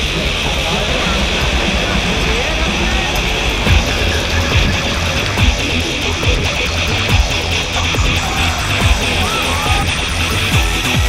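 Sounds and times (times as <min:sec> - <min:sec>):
music with low beat: 0:00.0 - 0:11.0
noisy drone: 0:00.0 - 0:11.0.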